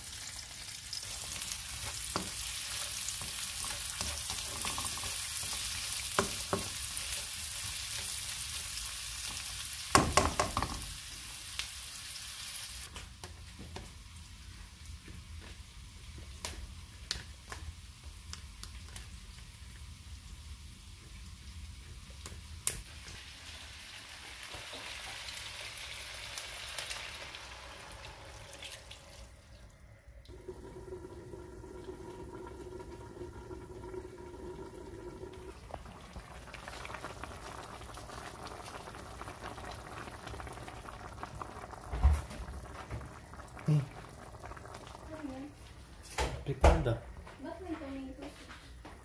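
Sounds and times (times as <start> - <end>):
stew sizzling and bubbling: 0.0 - 49.0
broth pouring: 27.2 - 45.8.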